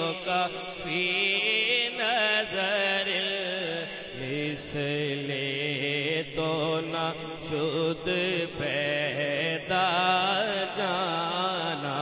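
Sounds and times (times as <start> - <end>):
solo voice singing devotional poem: 0.0 - 12.0.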